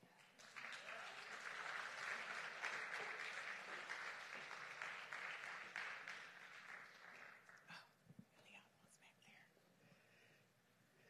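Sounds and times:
faint whispering: 7.7 - 10.4.

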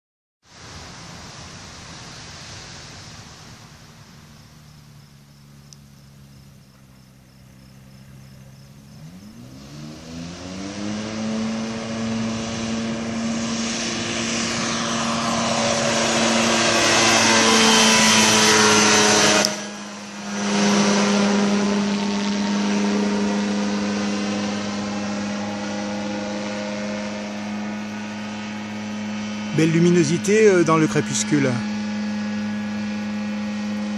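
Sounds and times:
ultralight engine and propeller: 0.5 - 33.9.

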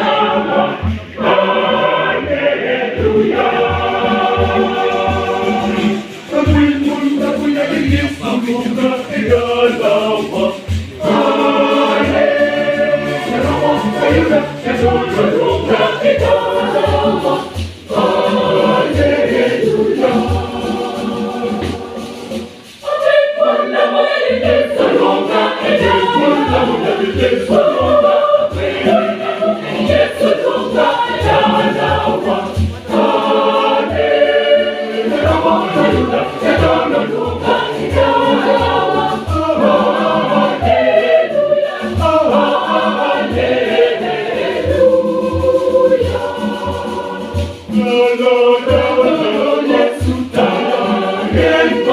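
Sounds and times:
conga drums: 0.0 - 51.9
mixed choir singing: 0.0 - 51.9.

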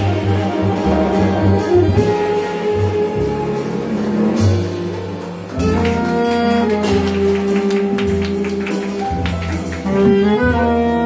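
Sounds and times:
jazz band playing: 0.0 - 11.0.

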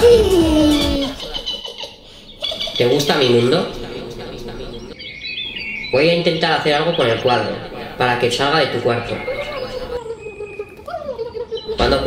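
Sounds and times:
birds chirping: 1.2 - 12.0.

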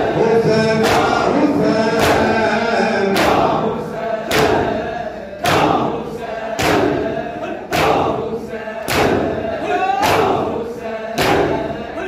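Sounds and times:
many voices chanting: 0.0 - 12.0
men striking chests in unison: 0.0 - 12.0.

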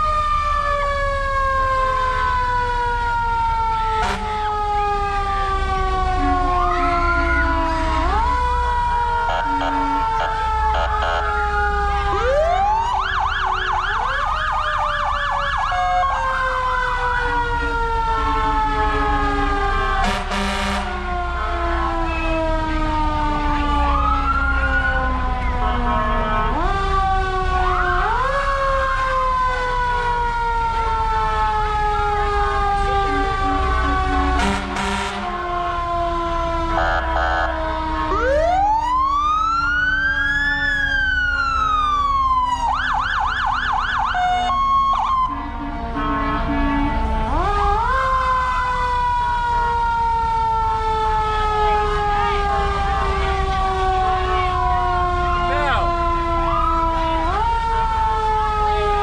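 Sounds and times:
emergency sirens wailing: 0.0 - 59.0
siren fast yelp: 3.7 - 5.0, 6.2 - 17.4, 18.4 - 22.7, 23.4 - 26.9, 32.7 - 35.6, 36.6 - 49.0, 51.4 - 59.0
short loud horn blasts: 20.0 - 20.9, 34.4 - 35.3.

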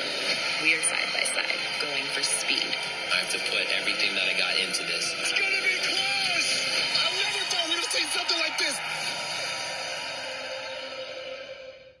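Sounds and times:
music from tv speaker: 0.0 - 12.0
voices from tv speaker: 0.6 - 8.9.

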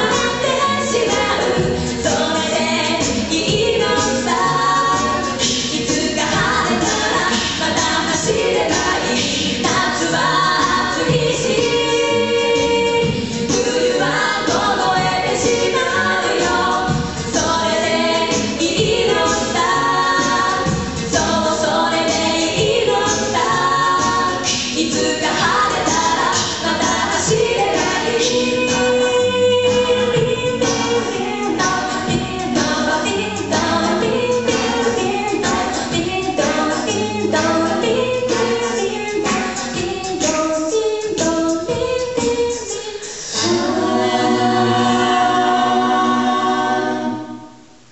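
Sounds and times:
a cappella group singing: 0.0 - 47.9.

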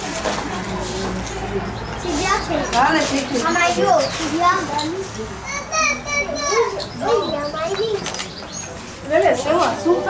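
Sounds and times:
people talking: 0.0 - 10.0
child voices: 3.5 - 8.3.

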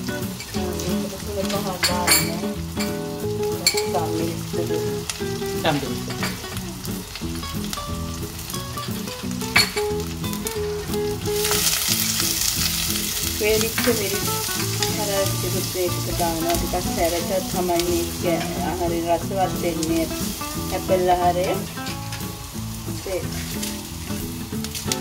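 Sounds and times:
spices sizzling in oil: 0.0 - 25.0.

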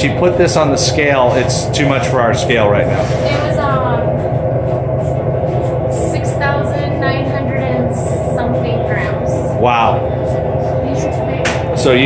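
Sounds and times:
exhaust hood fan drone: 0.0 - 12.0.

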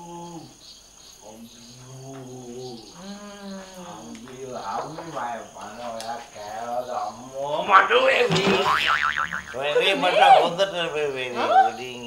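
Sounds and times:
comic boing sound effect: 8.2 - 10.1.

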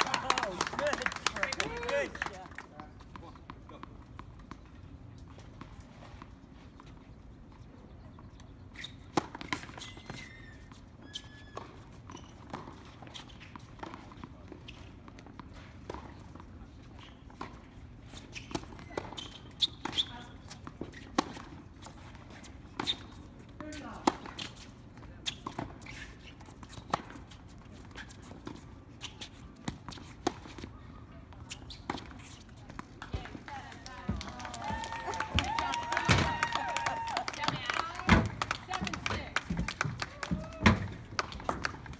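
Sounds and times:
tennis ball bouncing on court: 22.7 - 27.4, 31.5 - 41.9.

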